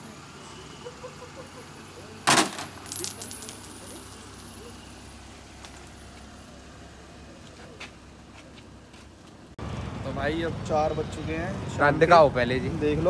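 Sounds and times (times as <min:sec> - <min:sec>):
light metallic clinks: 0:02.3 - 0:05.0.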